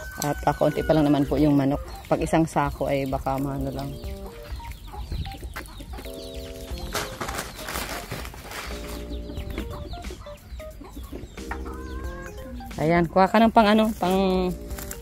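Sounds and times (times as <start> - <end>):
long steady-pitched chicken calls: 0.0 - 2.1, 9.0 - 12.7
chickens clucking: 0.0 - 15.0.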